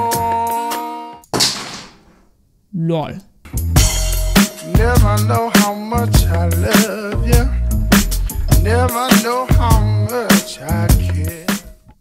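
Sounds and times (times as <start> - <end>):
voice: 2.8 - 3.3.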